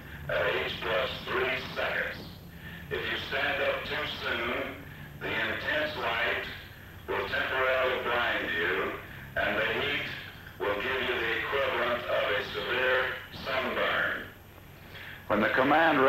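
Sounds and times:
man announcing over loudspeaker: 15.3 - 16.0.

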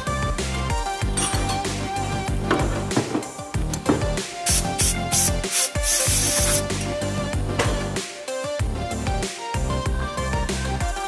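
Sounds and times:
background music: 0.0 - 11.0
aerosol spray hissing: 4.4 - 6.8.

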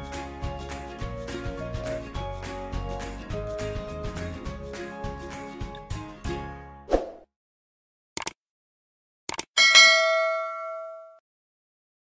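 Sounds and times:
clicks: 8.2 - 8.4, 9.3 - 9.5
notification bell ding: 9.6 - 11.2.

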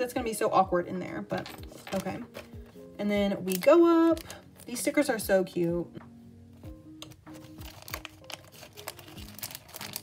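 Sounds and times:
soft background music: 0.0 - 10.0
plastic sleeve crinkling: 3.4 - 4.9, 7.0 - 10.0.

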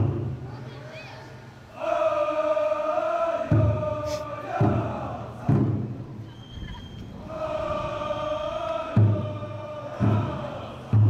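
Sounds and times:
large taiko drum beats: 0.0 - 0.5, 3.4 - 11.0
voices chanting: 0.0 - 11.0.

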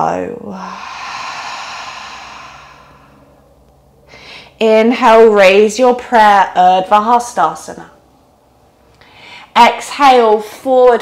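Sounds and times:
woman sighing: 0.5 - 3.3.

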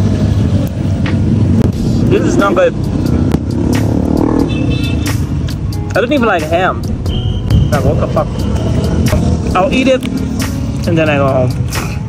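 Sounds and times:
car and motorbike engines passing: 0.0 - 12.0.

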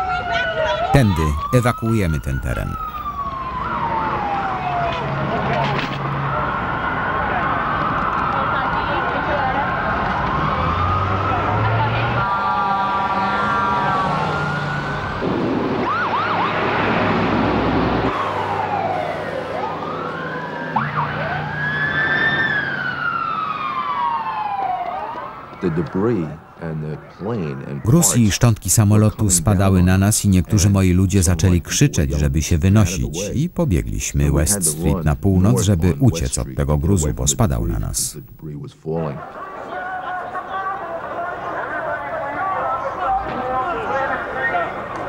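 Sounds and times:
emergency vehicle sirens wailing: 0.0 - 38.3, 39.2 - 45.0.

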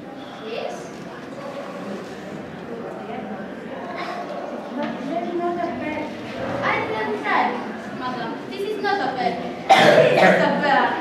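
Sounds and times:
young voices talking indistinctly: 0.0 - 11.0.

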